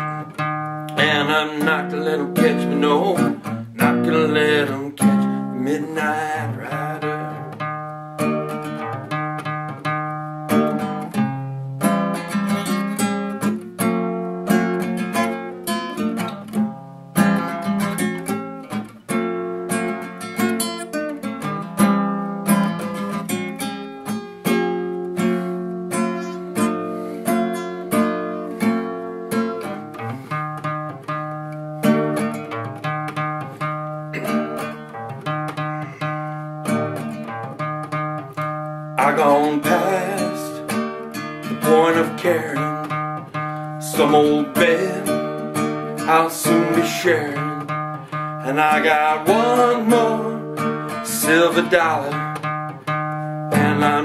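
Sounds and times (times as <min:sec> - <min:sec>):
fingerstyle classical guitar: 0:00.0 - 0:54.0.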